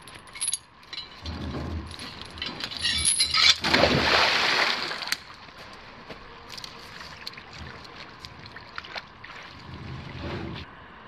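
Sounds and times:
faint wind: 0.0 - 11.0
wind rumble on microphone: 9.4 - 10.7.

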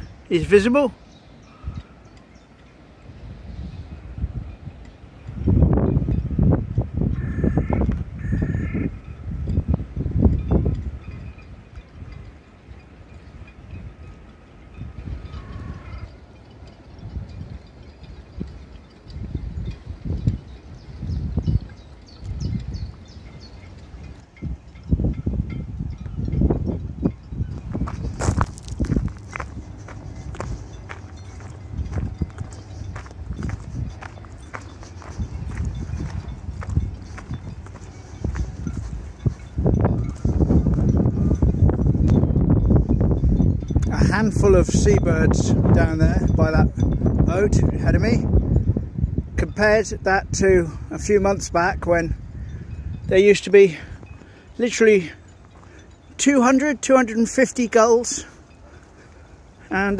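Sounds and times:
wind buffeting microphone: 0.0 - 59.9
footsteps: 27.6 - 40.8.

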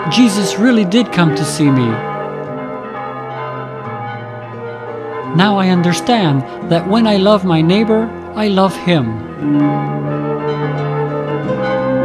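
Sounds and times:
church bells ringing: 0.0 - 12.0.

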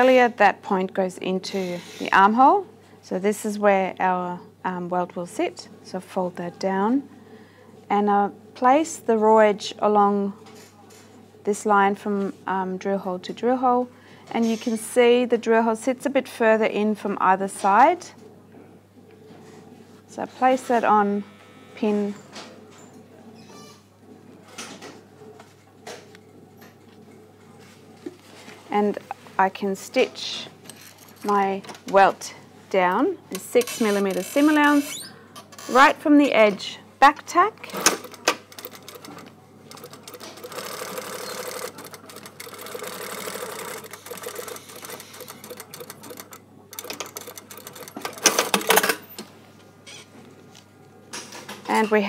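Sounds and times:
sewing machine stitching: 33.4 - 35.0, 37.7 - 49.0.

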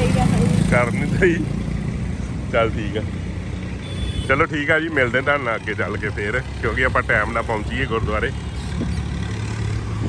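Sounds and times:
motorcycle engine running: 0.0 - 10.0
road noise: 0.0 - 10.0.

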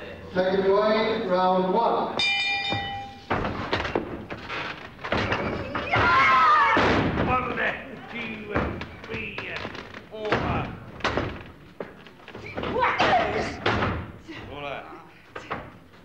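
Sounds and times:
bodies thudding onto ring canvas: 2.2 - 7.8
crowd shouting: 5.7 - 7.0.

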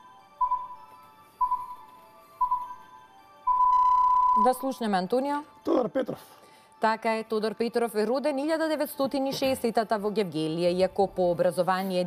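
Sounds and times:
electronic timer beeps: 0.0 - 4.8.

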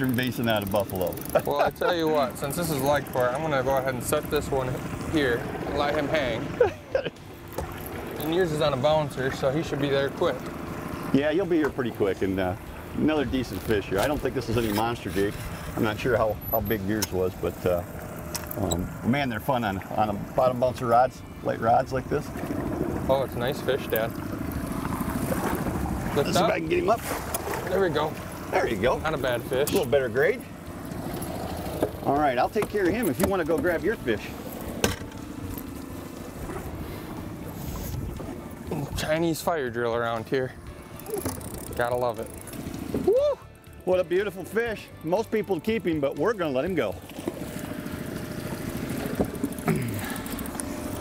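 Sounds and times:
outboard motor running: 0.0 - 51.0.

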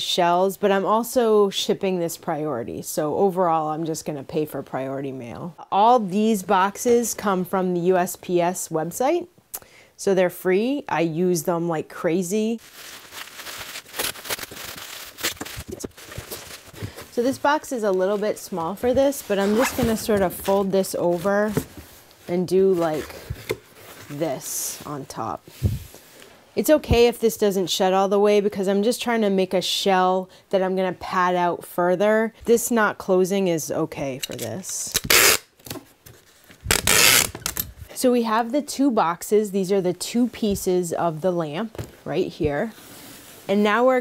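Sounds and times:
bubble wrap crackling: 12.5 - 21.5, 36.3 - 37.6
bubble wrap crinkling: 12.5 - 24.2, 36.2 - 37.9
packing tape ripping: 12.7 - 17.0, 34.9 - 35.8, 36.6 - 37.7.

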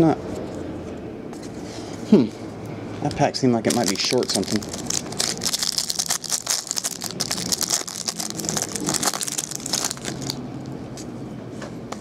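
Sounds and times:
card pack crinkling and clicks: 3.7 - 10.4.

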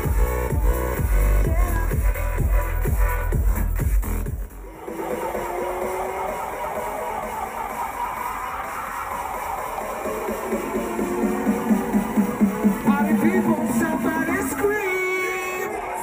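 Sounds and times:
heavy kick drum: 0.0 - 4.6
electronic dance music: 0.0 - 16.0.

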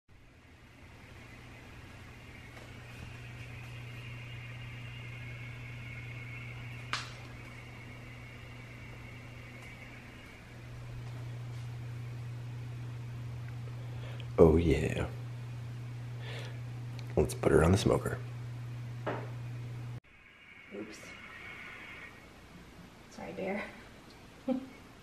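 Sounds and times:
faint high whine: 0.1 - 25.0
steady low hum: 0.1 - 25.0.

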